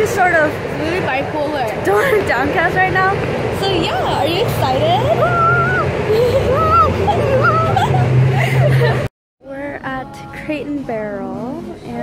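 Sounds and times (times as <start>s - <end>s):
woman squealing: 5.1s - 8.0s.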